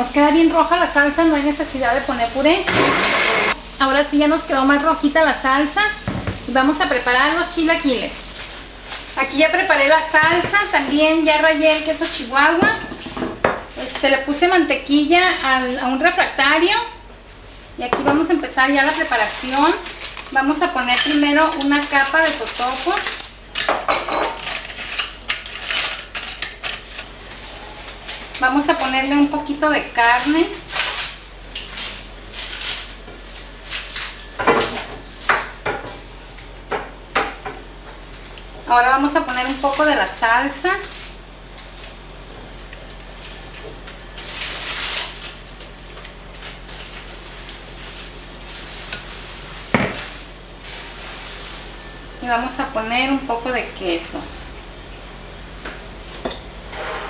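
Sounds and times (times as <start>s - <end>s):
tortilla chips crackling: 18.8s - 20.6s, 21.4s - 23.7s, 24.4s - 27.1s, 30.5s - 34.2s, 40.8s - 50.4s.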